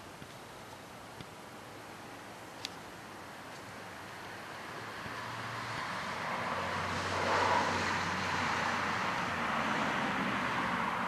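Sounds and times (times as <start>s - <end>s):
distant engine hum: 0.0s - 11.0s.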